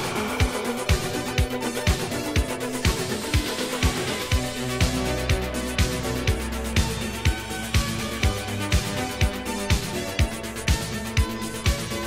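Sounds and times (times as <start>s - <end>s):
deep bass line: 0.0s - 11.4s.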